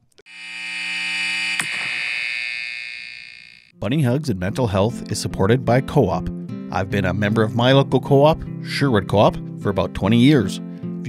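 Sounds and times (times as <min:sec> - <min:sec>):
alarm-like electronic tone: 0:00.3 - 0:03.7
click: 0:01.5 - 0:02.3.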